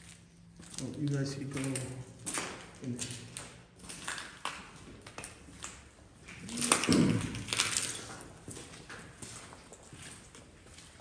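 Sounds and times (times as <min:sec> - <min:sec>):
footsteps on debris: 0:00.0 - 0:11.0.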